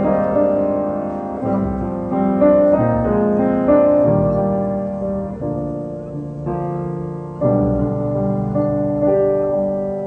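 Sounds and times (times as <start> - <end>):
piano playing slow chords: 0.0 - 10.0.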